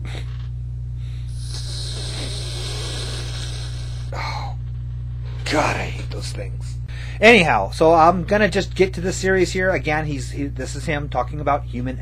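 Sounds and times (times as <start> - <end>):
low electrical hum: 0.0 - 12.0
aerosol spray hissing: 1.3 - 4.2.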